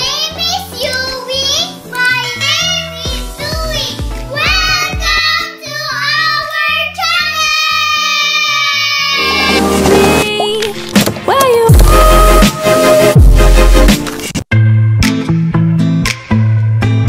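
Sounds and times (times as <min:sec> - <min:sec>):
children singing: 0:04.4 - 0:10.8
backing music with bass line: 0:09.2 - 0:17.0.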